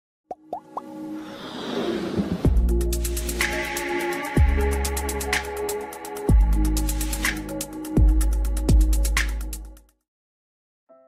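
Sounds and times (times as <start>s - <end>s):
rising pop sound effects: 0.3s - 0.9s.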